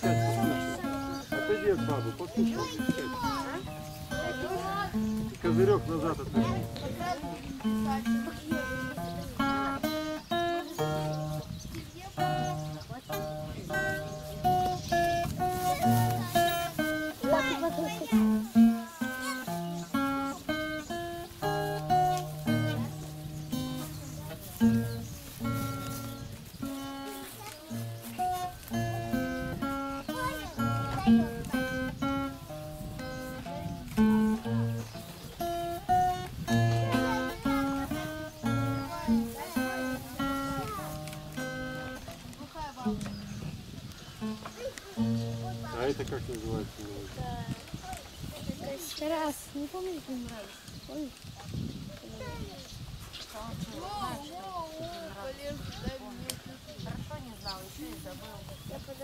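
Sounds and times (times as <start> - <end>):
acoustic guitar melody: 0.0 - 52.4.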